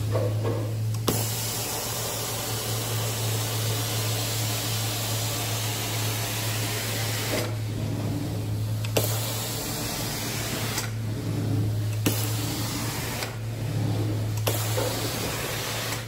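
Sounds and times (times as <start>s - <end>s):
carpet cleaner humming: 0.0s - 16.0s.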